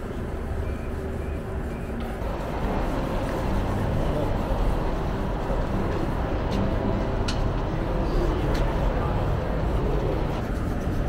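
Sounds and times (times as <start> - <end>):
faint voices: 0.0 - 11.0
traffic rumble: 0.0 - 11.0.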